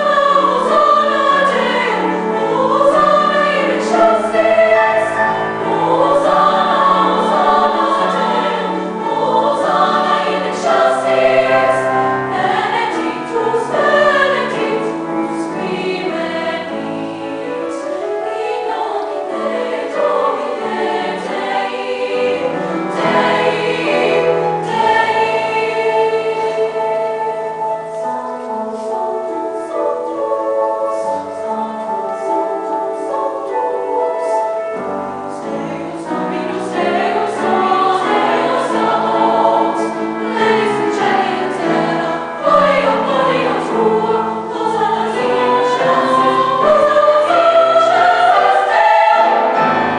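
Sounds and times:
girls choir singing: 0.0s - 49.9s
piano accompaniment: 0.0s - 49.9s.

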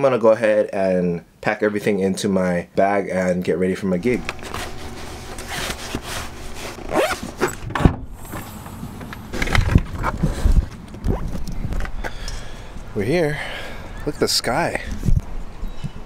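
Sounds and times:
bag rustling and knocking: 4.0s - 11.8s.

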